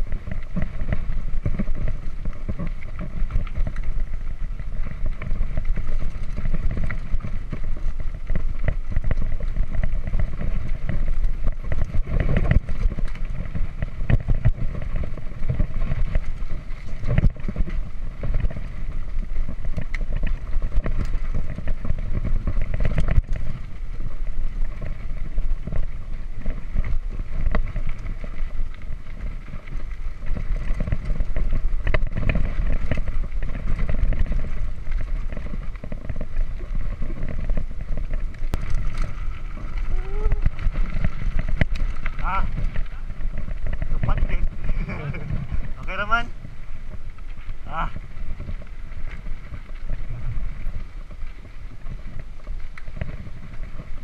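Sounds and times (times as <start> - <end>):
bike rattling over rocky trail: 0.0 - 54.0
wind buffeting microphone: 0.0 - 54.0.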